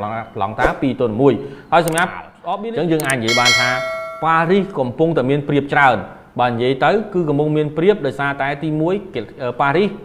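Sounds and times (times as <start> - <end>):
bell-like notification ding: 3.1 - 4.7.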